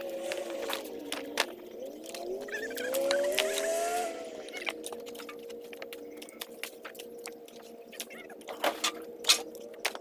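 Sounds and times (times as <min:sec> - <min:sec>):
motor engine humming: 0:00.0 - 0:10.0.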